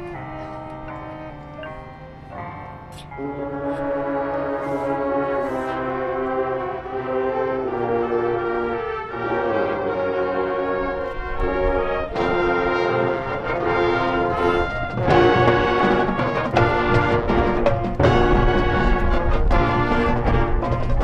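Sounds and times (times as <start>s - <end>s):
brass sustained chords: 0.0s - 21.0s
low drums: 11.4s - 21.0s.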